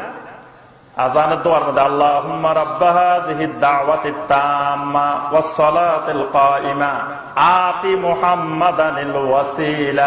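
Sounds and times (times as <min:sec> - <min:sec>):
man chanting melodically: 0:00.0 - 0:10.0.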